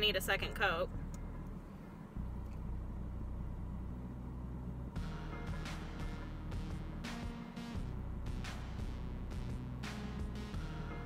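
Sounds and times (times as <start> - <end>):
car cabin hum: 0.0 - 7.1.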